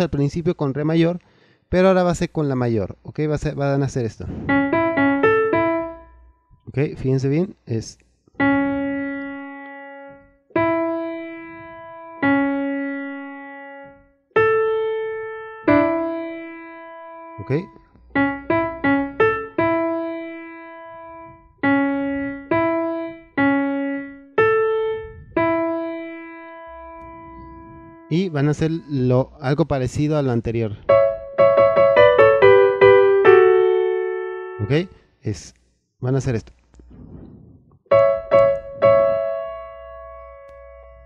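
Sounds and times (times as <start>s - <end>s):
keyboard piano melody: 4.5s - 6.7s, 8.4s - 29.6s, 30.8s - 34.9s, 37.8s - 41.0s.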